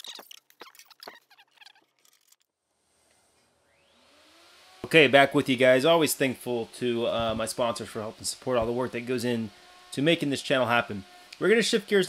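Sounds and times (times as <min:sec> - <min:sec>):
faint rising whir: 0:02.7 - 0:12.0
man speaking: 0:04.8 - 0:12.0.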